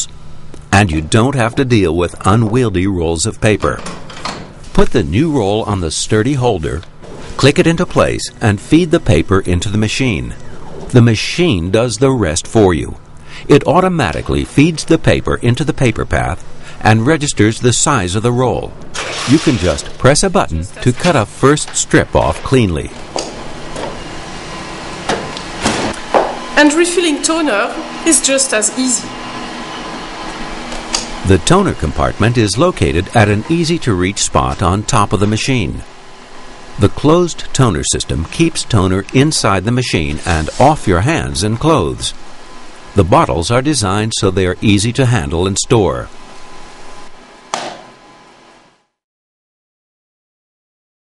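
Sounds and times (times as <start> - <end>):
printer mechanical whir: 0.0 - 48.8
printer cutting paper: 19.0 - 42.0.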